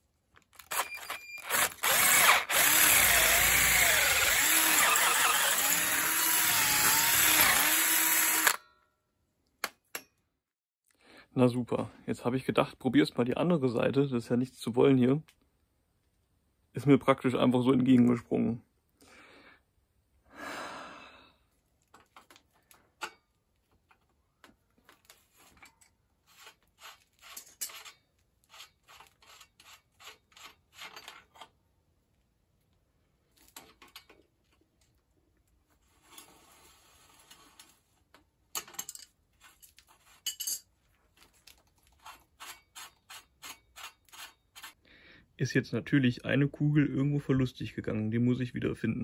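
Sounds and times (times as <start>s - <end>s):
metal rubbing and scraping: 25.2s - 31.4s.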